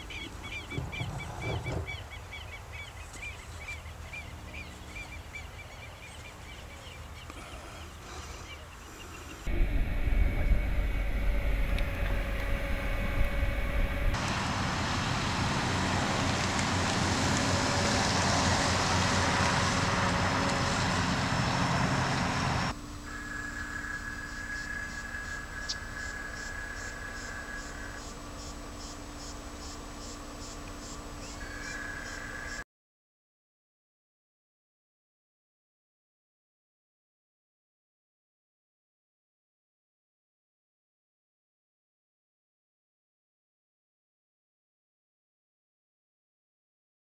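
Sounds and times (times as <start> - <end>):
steady hum: 7.3 - 15.3, 21.1 - 32.6
car engine and tyre noise: 9.5 - 32.6.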